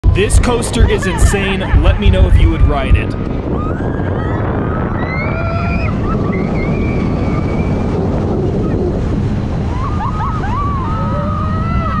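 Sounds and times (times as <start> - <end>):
wind buffeting microphone: 0.0 - 12.0
riders screaming: 3.5 - 7.9, 9.6 - 12.0.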